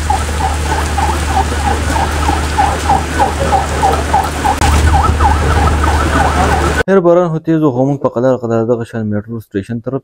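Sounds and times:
heavy rain falling: 0:00.0 - 0:06.8.

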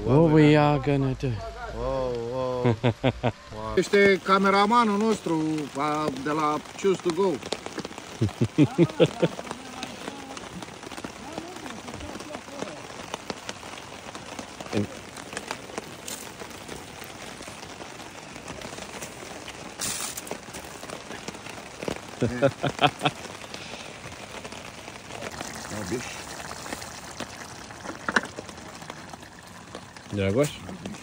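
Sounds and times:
rain ticking on nylon tarp: 0:00.0 - 0:31.0
water dripping: 0:03.8 - 0:31.0.

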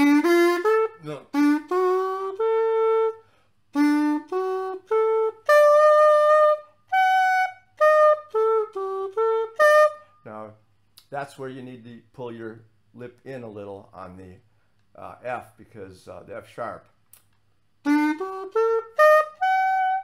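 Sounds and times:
pocket sax playing arpeggio: 0:00.0 - 0:10.1, 0:17.8 - 0:20.0.

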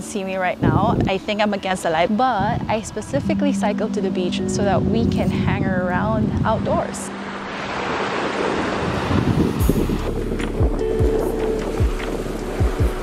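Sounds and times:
waves washing onto shore: 0:06.4 - 0:13.0
music with deep kick drum: 0:09.6 - 0:13.0.

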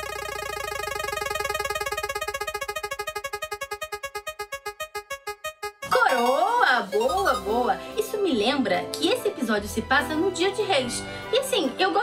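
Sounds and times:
prize wheel ticking: 0:05.8 - 0:07.7.

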